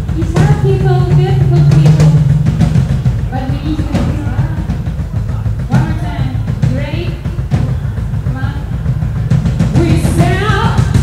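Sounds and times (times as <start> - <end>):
drum kit and bass: 0.0 - 11.0.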